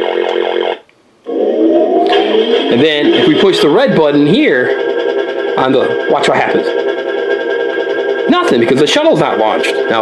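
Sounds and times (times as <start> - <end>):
synthesized tone rising: 1.2 - 10.0
warbling voice-like sweeps: 1.3 - 9.9.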